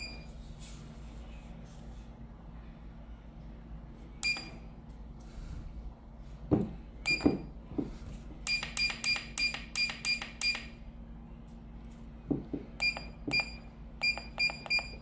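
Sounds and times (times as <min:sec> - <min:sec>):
electronic keypad beeps: 0:12.8 - 0:15.0.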